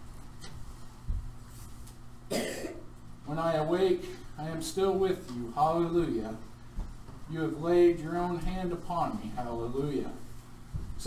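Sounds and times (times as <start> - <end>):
person coughing: 2.3 - 2.9.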